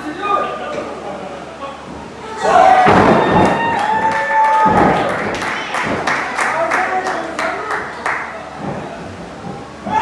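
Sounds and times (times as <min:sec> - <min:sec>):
crowd shouting: 0:02.3 - 0:05.4
low thud: 0:02.8 - 0:03.6
body slamming onto mat: 0:02.8 - 0:03.7.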